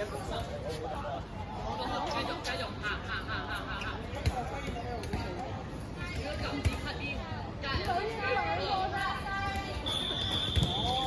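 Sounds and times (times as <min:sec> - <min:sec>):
referee's whistle long blast: 0:09.8 - 0:11.0.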